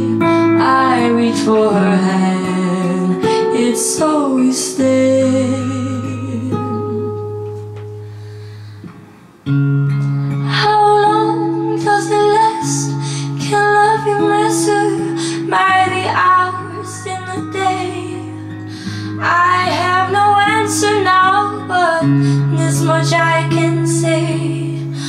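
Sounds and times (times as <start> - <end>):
girl singing with vibrato: 0.0 - 7.8, 10.3 - 25.0
acoustic guitar: 0.0 - 25.0.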